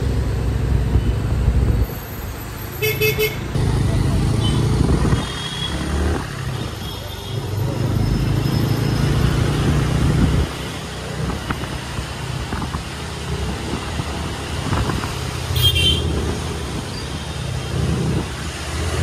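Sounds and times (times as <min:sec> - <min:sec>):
vehicle horn toot: 0:15.6 - 0:16.1.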